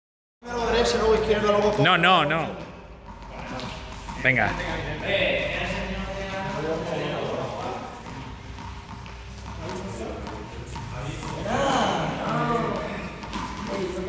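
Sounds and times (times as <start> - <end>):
people talking in a large room: 0.4 - 14.0.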